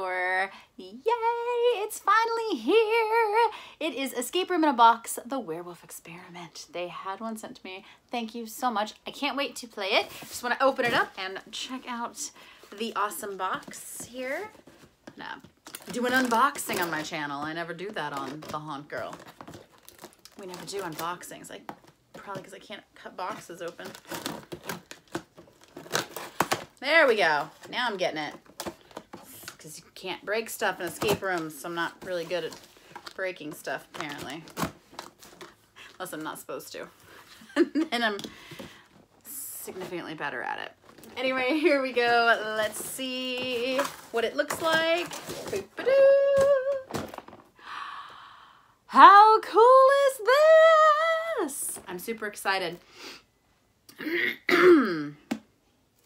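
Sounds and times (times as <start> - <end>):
woman clearing her throat: 53.9 - 55.2.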